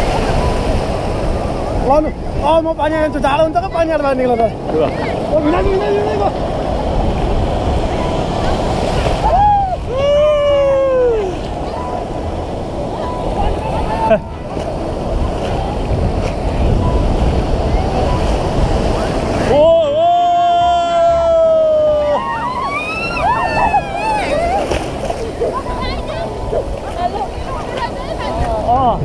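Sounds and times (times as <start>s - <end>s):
wind on microphone: 0.0s - 19.8s, 22.8s - 29.0s
surf washing and foaming: 0.0s - 29.0s
wave breaking: 0.0s - 29.0s.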